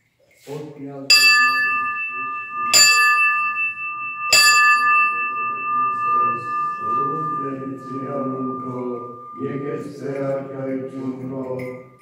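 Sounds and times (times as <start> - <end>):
bell ringing: 1.1 - 12.0.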